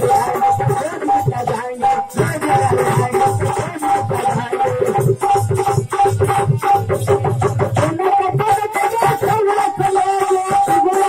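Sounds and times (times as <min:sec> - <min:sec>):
fast hand drum beats: 0:00.0 - 0:11.0.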